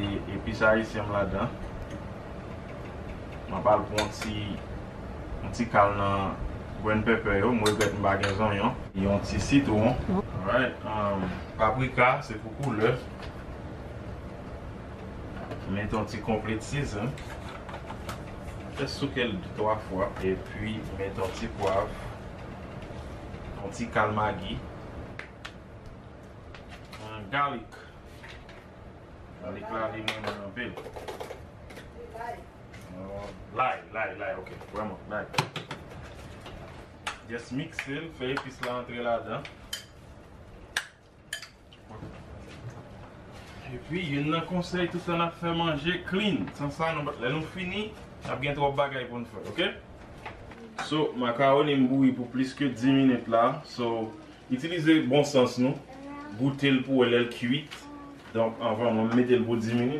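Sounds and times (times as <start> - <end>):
man talking: 5.4 - 13.1, 18.8 - 22.0, 50.8 - 59.9.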